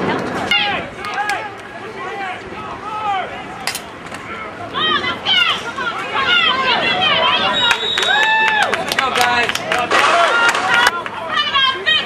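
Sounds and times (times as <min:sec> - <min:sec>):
crowd shouting: 0:00.0 - 0:12.0.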